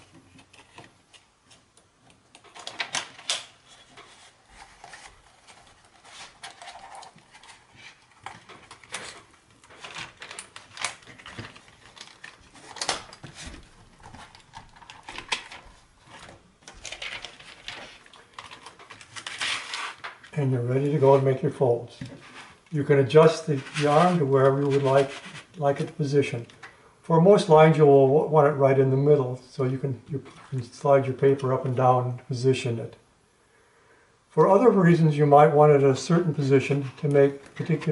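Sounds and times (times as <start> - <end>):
plastic clicks and rustles: 0.0 - 20.4.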